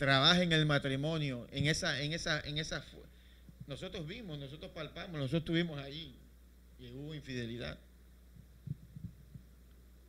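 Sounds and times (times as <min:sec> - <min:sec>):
low electrical hum: 0:00.0 - 0:10.0
microphone handling thumps: 0:08.3 - 0:09.5.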